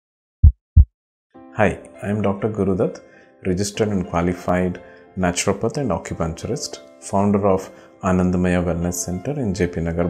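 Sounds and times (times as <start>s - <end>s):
heartbeat thump: 0.4s - 0.9s
background music: 1.4s - 10.0s.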